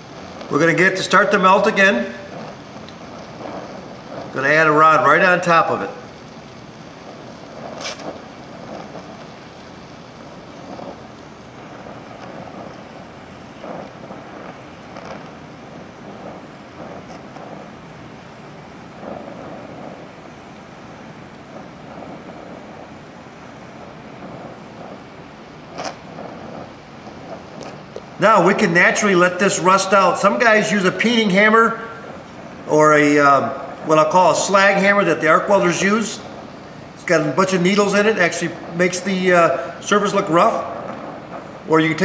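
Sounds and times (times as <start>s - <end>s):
torch flame hissing: 0.0s - 42.0s
sharp pops of torch: 5.9s - 28.6s, 40.5s - 41.7s.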